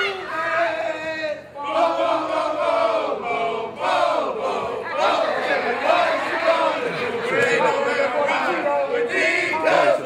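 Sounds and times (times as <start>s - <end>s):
large crowd noise: 0.0s - 10.0s.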